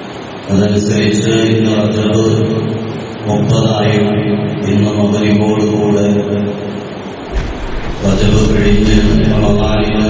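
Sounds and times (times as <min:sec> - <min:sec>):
man chanting: 0:07.3 - 0:10.0.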